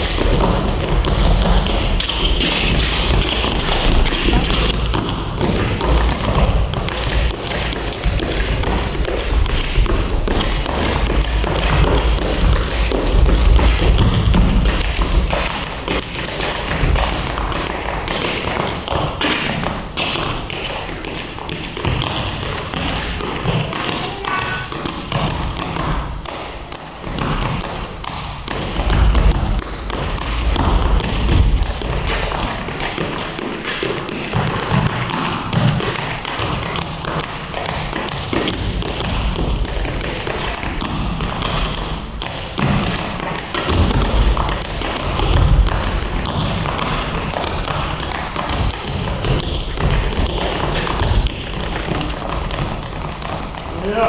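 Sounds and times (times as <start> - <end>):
heel drops and stomps: 0.0 - 53.8
tap dancer tapping: 0.0 - 54.0.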